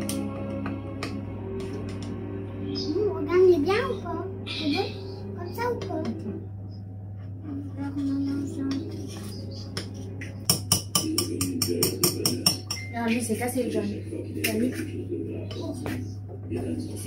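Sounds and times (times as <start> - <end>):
background music: 0.0 - 14.2
spoon clinking against bowl: 9.7 - 13.0.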